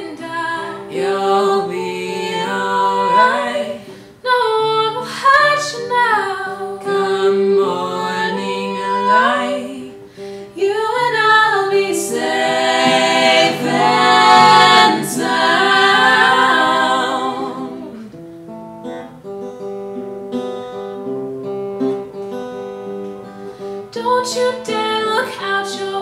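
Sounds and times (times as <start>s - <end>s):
voices singing together: 0.0s - 4.0s, 6.2s - 10.0s, 10.6s - 18.1s
acoustic guitar: 0.0s - 26.0s.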